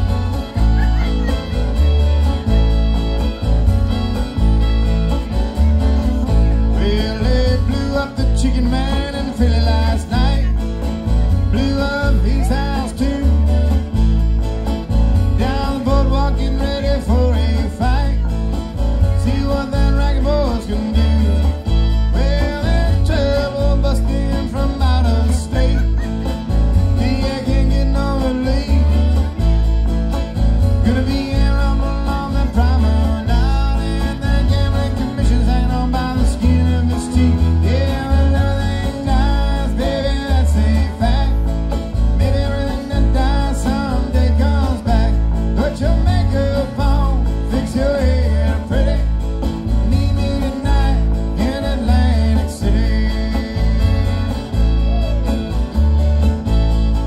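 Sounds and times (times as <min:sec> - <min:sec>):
bowed fiddle: 0:00.0 - 0:43.3
plucked upright bass: 0:00.0 - 0:57.0
strummed acoustic guitars: 0:00.0 - 0:57.0.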